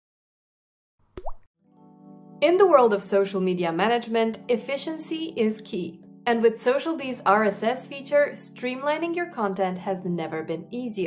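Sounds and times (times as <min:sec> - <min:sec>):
pop with upward-sliding tone: 0:01.2 - 0:01.5.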